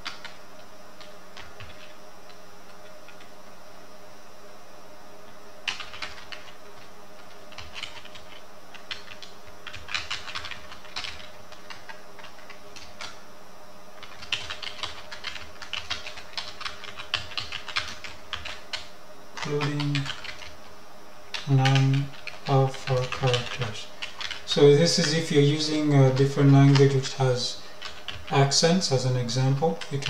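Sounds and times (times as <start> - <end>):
computer keyboard typing: 0.0 - 0.4, 1.0 - 2.0, 5.6 - 13.2, 14.0 - 20.6, 21.3 - 30.0
steady background hum: 0.0 - 30.0.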